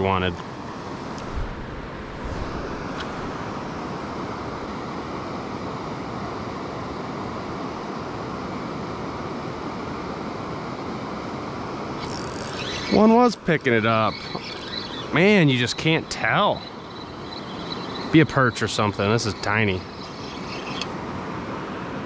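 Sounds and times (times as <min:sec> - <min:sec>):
low bumps: 0:01.2 - 0:04.3.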